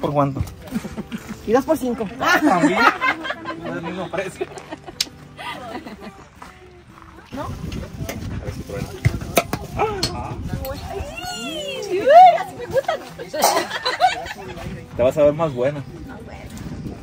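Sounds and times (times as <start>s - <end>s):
people talking and laughing: 0.0s - 17.0s.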